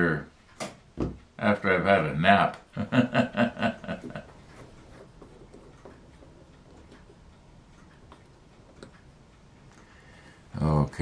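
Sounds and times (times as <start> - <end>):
faint clock ticking: 0.0 - 11.0.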